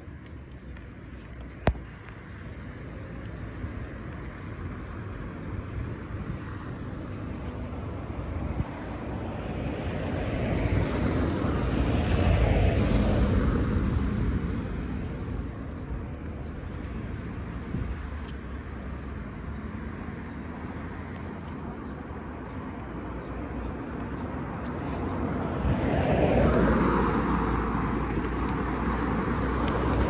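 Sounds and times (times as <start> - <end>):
wind rumble on microphone: 5.6 - 16.5, 17.1 - 18.4.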